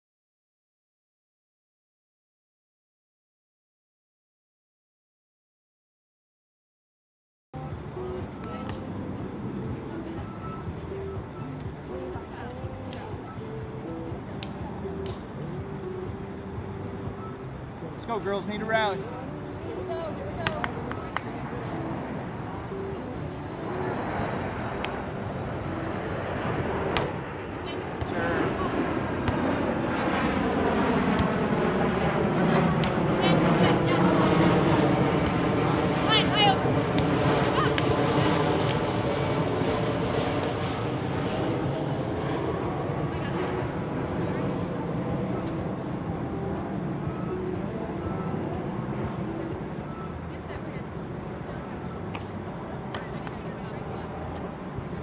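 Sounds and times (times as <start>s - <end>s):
aircraft engine passing overhead: 7.6s - 55.0s.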